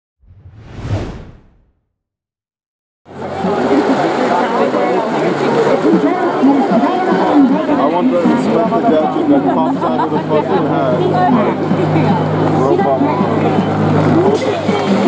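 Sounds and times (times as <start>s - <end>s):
whoosh: 0.2s - 1.8s
stadium crowd chatter: 3.1s - 15.0s.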